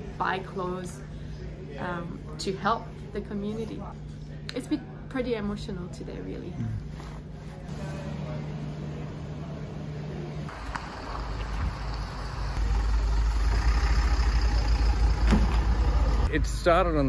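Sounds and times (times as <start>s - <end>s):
truck engine running: 7.7s - 16.5s.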